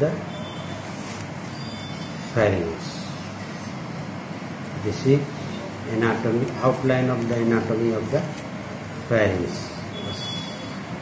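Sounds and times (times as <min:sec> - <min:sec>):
background hiss with low hum: 0:00.0 - 0:11.0.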